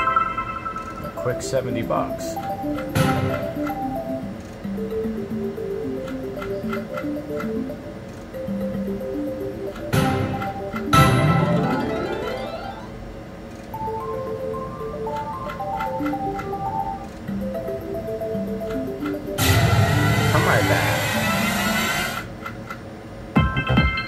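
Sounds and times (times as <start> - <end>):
chiming win tones: 0.0 - 13.0
plinking slot machine melody: 0.0 - 13.0, 13.8 - 22.2, 23.4 - 24.0
rushing reel spin sound: 19.4 - 22.3.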